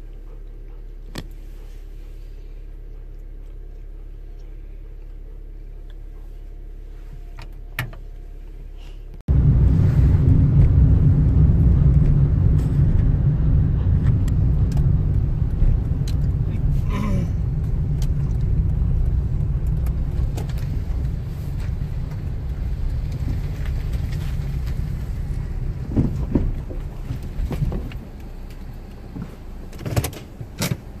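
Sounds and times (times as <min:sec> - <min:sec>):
car engine idling: 0:00.0 - 0:31.0.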